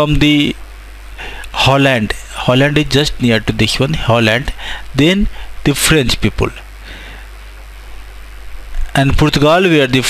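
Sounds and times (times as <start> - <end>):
faint hiss: 0.0 - 10.0
steady low hum: 0.0 - 10.0.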